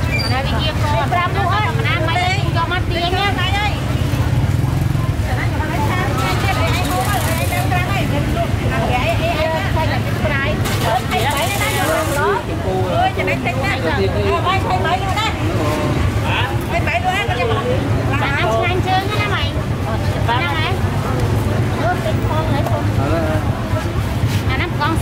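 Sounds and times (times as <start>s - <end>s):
low rumble of engines and traffic: 0.0s - 25.0s
voices talking: 0.0s - 25.0s.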